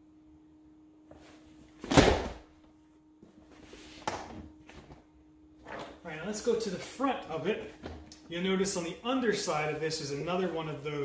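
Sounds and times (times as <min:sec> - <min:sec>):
scuffing and rubbing: 0:03.2 - 0:05.0.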